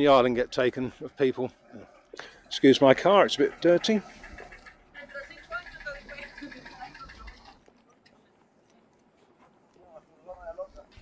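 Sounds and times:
distant people talking: 1.3 - 10.9.

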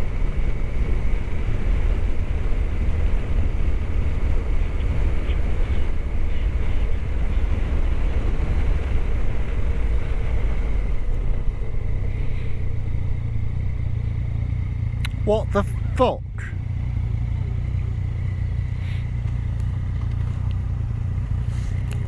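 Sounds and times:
motorcycle engine running: 0.0 - 22.0
road and wind noise: 0.0 - 22.0.

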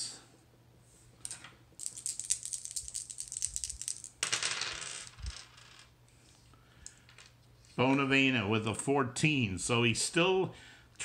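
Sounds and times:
dice clattering on surface: 1.3 - 5.9
dice rattling in hand: 1.8 - 5.9.

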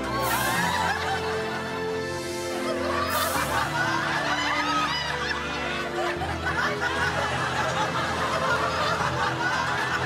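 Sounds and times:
background music: 0.0 - 10.0
laugh track: 0.0 - 10.0.

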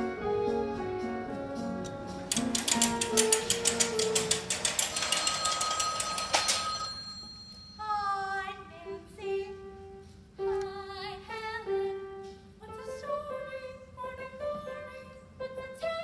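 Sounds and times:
telephone bell ringing: 3.7 - 8.2
girl singing: 7.8 - 16.0.

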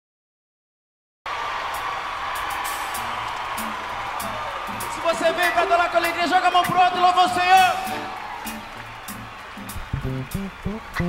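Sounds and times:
audience noise: 1.3 - 11.0
short low bass notes: 9.8 - 11.0.

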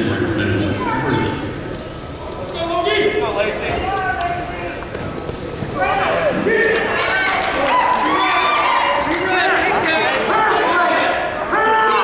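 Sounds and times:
people shouting: 10.2 - 12.0.

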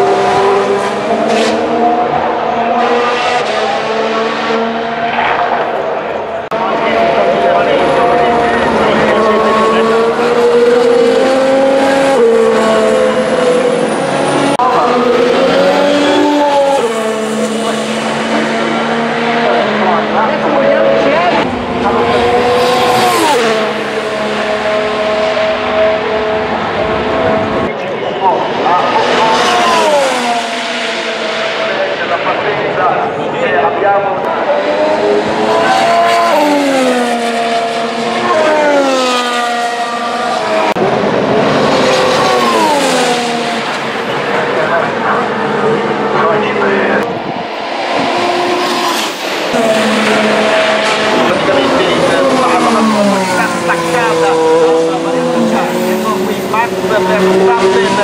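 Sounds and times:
race cars passing: 0.0 - 58.0.

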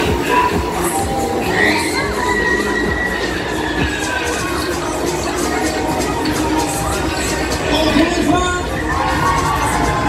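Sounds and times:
riders shouting and screaming: 0.0 - 10.0
steady ride din: 0.0 - 10.0.

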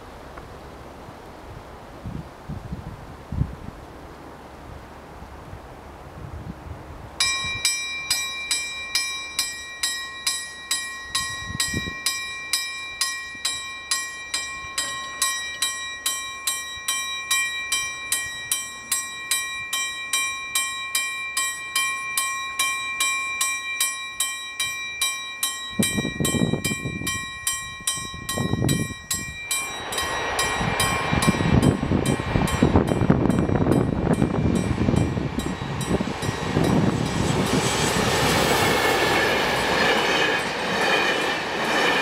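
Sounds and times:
level crossing warning bell: 7.2 - 42.0.

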